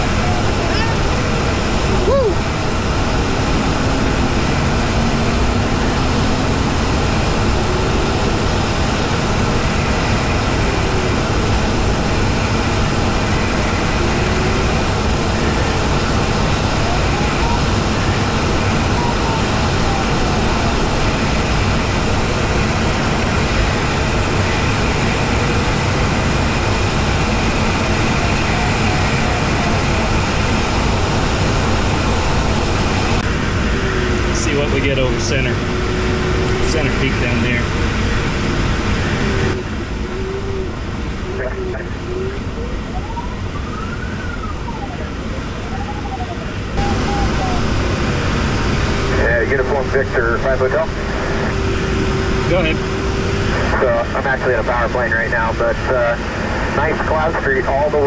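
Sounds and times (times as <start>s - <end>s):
air rushing around glider: 0.0s - 58.0s
variometer tone sliding in pitch: 33.6s - 53.7s.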